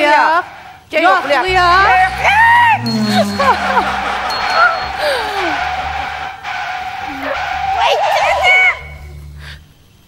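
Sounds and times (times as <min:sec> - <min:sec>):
voices: 0:00.0 - 0:09.6
car tyres screeching: 0:00.0 - 0:10.0.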